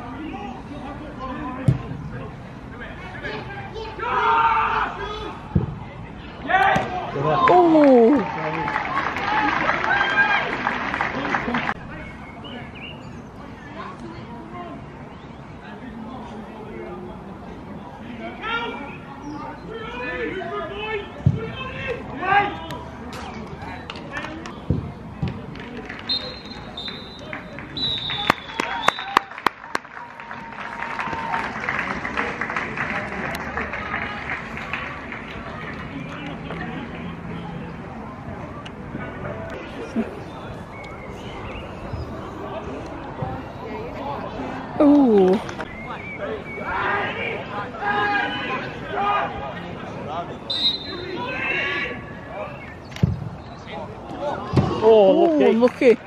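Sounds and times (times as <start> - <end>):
referee's whistle blasts: 26.1 - 29.2, 50.5 - 52.0
hand claps: 27.3 - 36.6.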